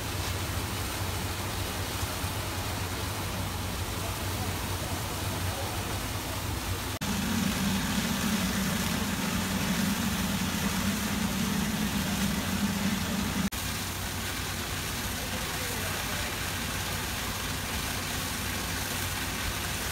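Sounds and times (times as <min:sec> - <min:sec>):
diesel engines running: 0:00.0 - 0:19.9
water streams hissing: 0:00.0 - 0:19.9.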